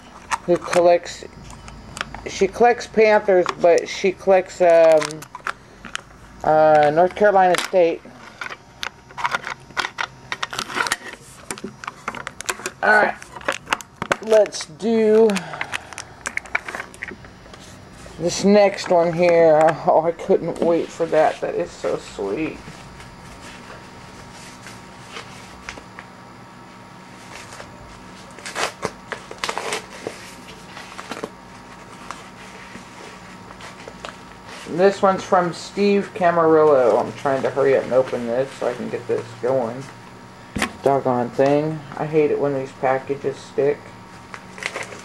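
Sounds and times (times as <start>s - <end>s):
faint electrical hum: 0.0s - 45.0s
packaging rustling and crinkling: 4.8s - 26.1s, 27.1s - 35.0s, 44.0s - 45.0s
packaging tearing: 28.4s - 31.3s, 44.2s - 45.0s.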